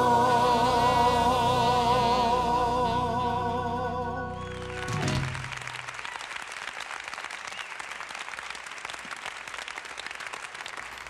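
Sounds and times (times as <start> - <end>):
gospel backing music chord: 0.0 - 5.6
applause: 4.5 - 11.0.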